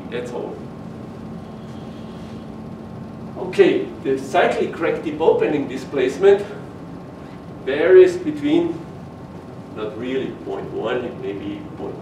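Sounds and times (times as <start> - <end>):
machinery low hum: 0.0 - 12.0.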